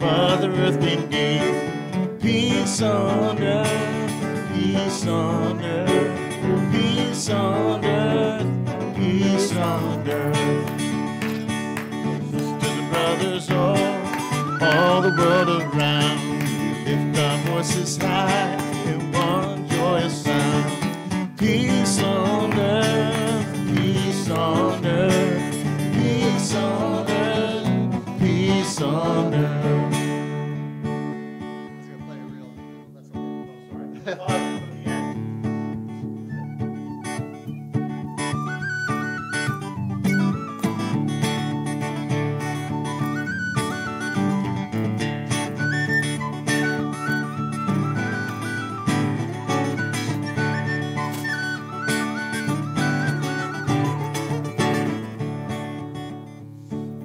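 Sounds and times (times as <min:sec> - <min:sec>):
acoustic guitar strumming: 0:00.0 - 0:57.0
tin whistle melody: 0:13.6 - 0:17.3, 0:36.0 - 0:55.6.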